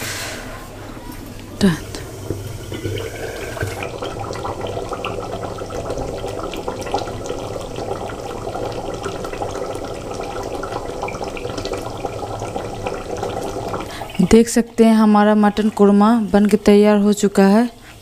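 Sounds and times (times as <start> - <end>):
gravy bubbling in a pot: 0.9 - 17.9.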